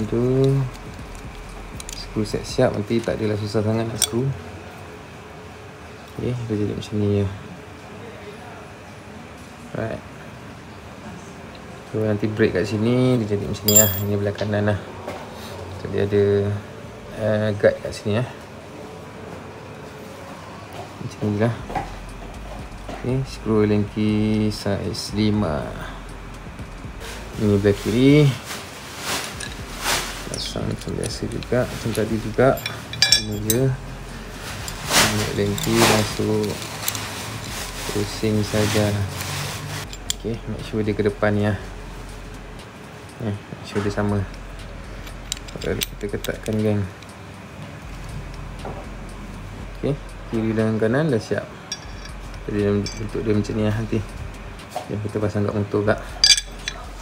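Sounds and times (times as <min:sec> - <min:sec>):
steady background hiss: 0:00.0 - 0:57.0
steady background noise: 0:00.0 - 0:57.0.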